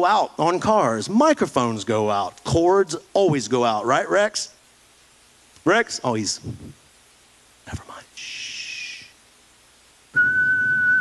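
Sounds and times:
man whistling high note: 10.2 - 11.0.

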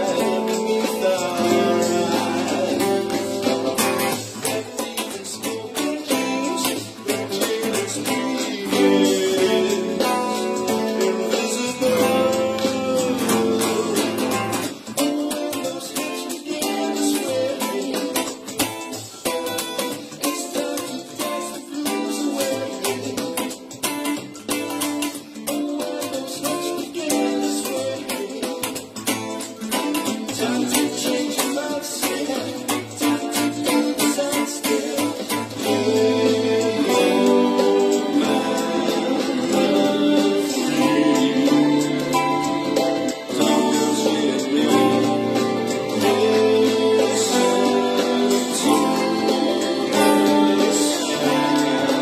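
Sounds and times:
choppy electric guitar rhythm: 0.0 - 52.0
funk soul band music: 0.0 - 52.0.

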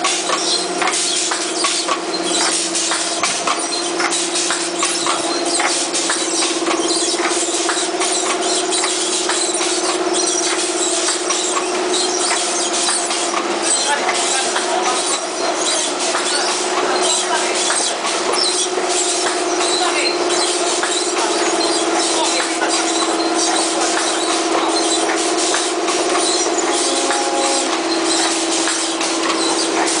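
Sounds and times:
machine humming: 0.0 - 30.0.

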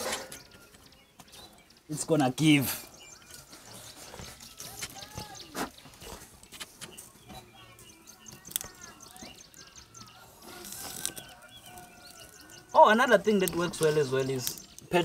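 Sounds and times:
small birds chirping: 0.0 - 15.0
chickens clucking: 2.7 - 14.6.

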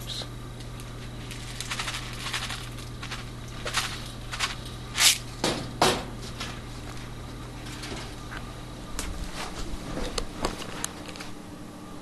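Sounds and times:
steady low hum: 0.0 - 12.0
food pellets rattling in plastic canister: 1.2 - 5.3.

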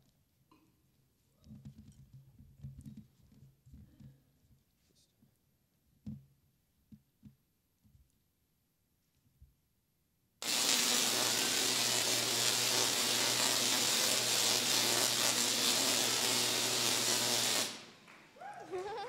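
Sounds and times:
tesla coil buzzing crackle: 10.4 - 18.0.

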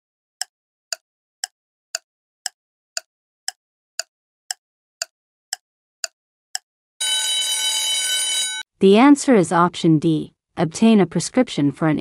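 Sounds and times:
timer ticks: 0.4 - 6.7
loud steady alarm tone: 7.0 - 8.6.

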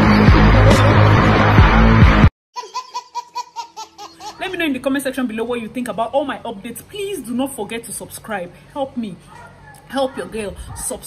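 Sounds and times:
loud music: 0.0 - 2.3
baby laughing: 2.6 - 4.7.

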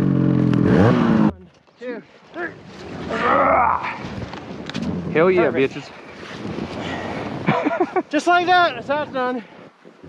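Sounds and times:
snowmobile engine under throttle: 0.0 - 1.3
person shouting or grunting: 3.1 - 4.0.

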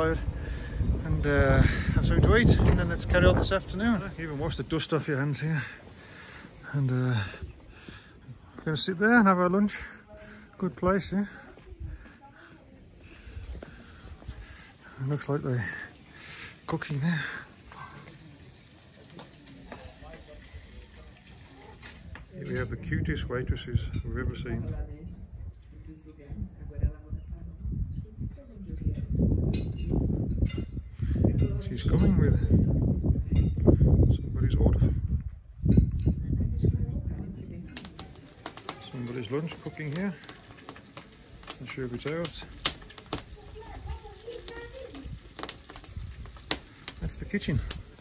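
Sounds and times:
wood fire crackling and popping: 0.0 - 23.2, 37.2 - 48.0
faint distant voices: 3.8 - 22.9, 36.0 - 48.0
food frying in a pan: 15.6 - 22.4, 37.8 - 48.0.

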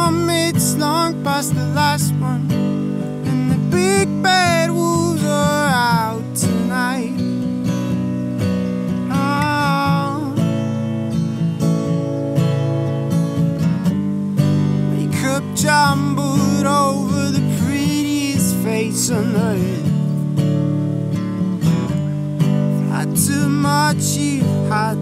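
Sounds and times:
person singing wordless lines: 0.0 - 7.8, 8.8 - 11.0, 14.9 - 20.4, 22.6 - 25.0
acoustic guitar strumming: 0.0 - 25.0.

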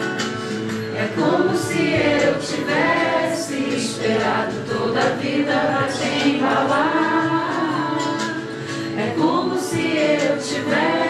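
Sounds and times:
person singing over music: 0.0 - 11.0.

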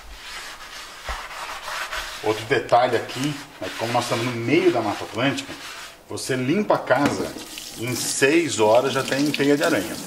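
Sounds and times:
sponge scrubbing frying pan: 0.0 - 6.0.

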